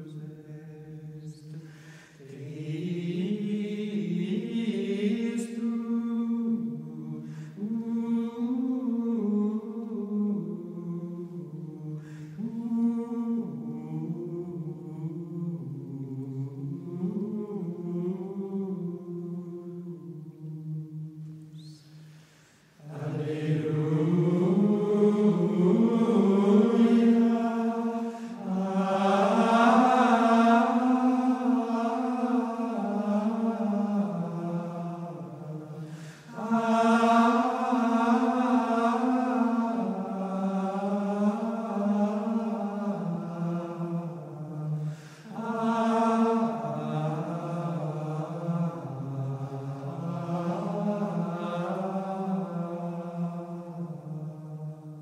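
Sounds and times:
men's choir chanting in unison: 2.2s - 19.7s, 22.8s - 55.0s.

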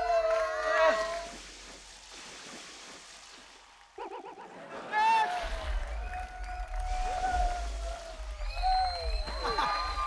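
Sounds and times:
water splashing: 0.0s - 4.5s.

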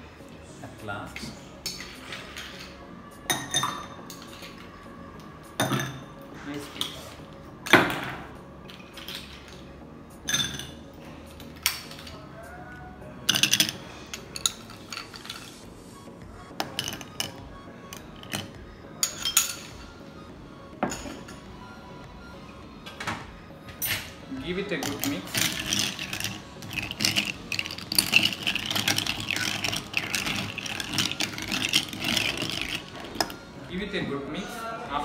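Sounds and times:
ice cubes clinking in a glass: 8.7s - 9.6s, 10.3s - 10.8s, 13.3s - 15.6s, 16.6s - 17.4s, 18.2s - 19.7s, 24.8s - 33.4s.

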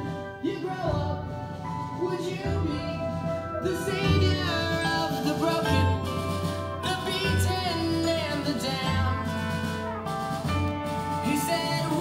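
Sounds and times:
man singing: 0.0s - 12.0s
rock song through loudspeaker: 0.0s - 12.0s.

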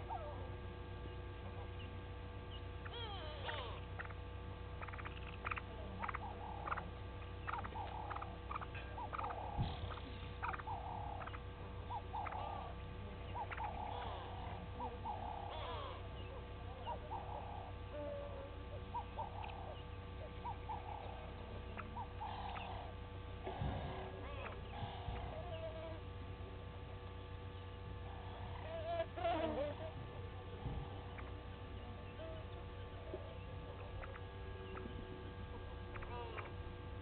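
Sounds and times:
steady electrical hum: 0.0s - 37.0s
birds giving short calls: 1.8s - 26.1s, 27.2s - 36.7s.

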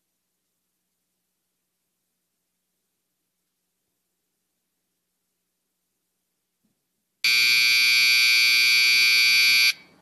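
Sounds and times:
electric buzzer: 7.3s - 9.8s.

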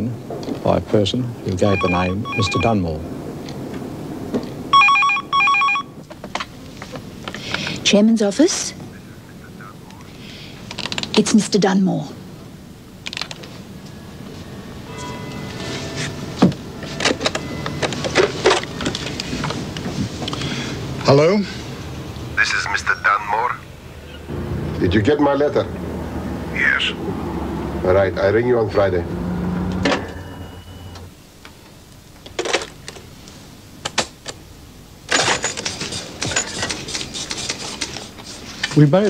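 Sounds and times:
telephone line hum: 1.6s - 2.9s, 4.7s - 6.0s, 13.1s - 20.5s.

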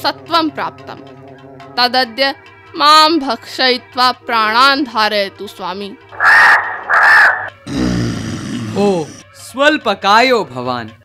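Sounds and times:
crow cawing: 6.1s - 7.6s.

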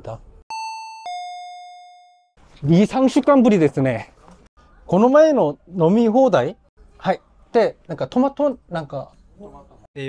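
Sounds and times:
two-note doorbell chime: 0.5s - 2.4s.

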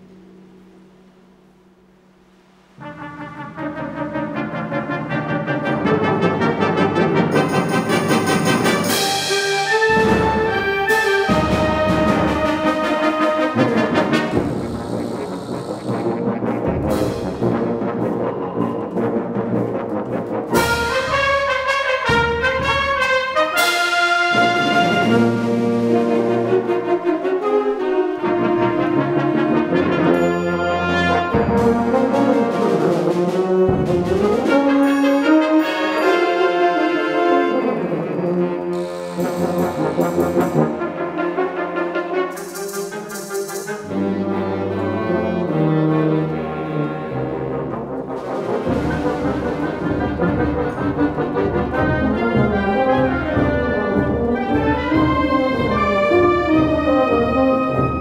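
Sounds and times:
wind band playing: 2.6s - 58.0s
sharp accented strikes: 14.1s - 21.1s, 38.7s - 41.0s.

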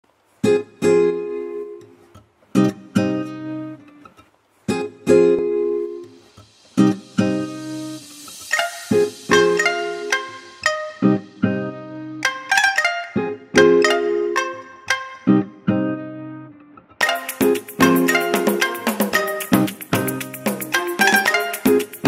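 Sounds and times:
plucked guitar chords: 0.4s - 22.0s.

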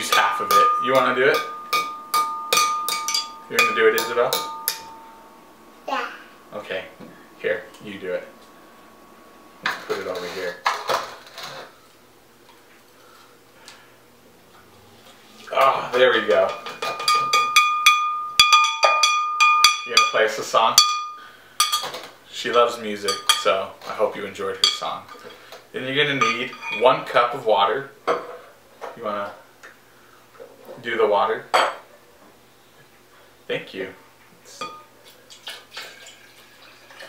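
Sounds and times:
spoon tapping glass jar: 0.0s - 5.4s, 16.5s - 20.2s
water pouring: 35.3s - 37.0s.

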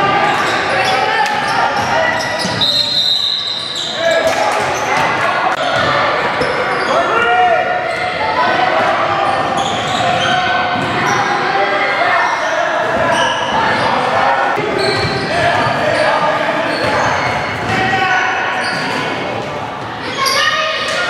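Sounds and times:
crowd chattering in gymnasium: 0.0s - 21.0s.

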